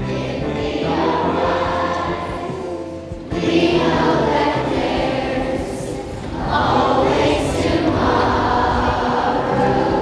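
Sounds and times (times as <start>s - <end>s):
choir singing sustained notes: 0.0s - 10.0s.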